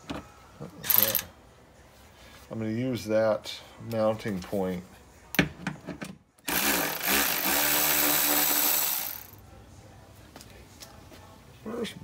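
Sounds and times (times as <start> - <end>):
cordless ratchet motor whining: 6.5 - 9.4.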